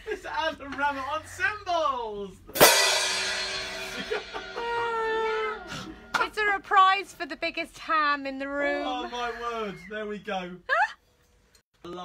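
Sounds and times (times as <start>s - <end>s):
piano chord ringing: 2.6s - 6.3s.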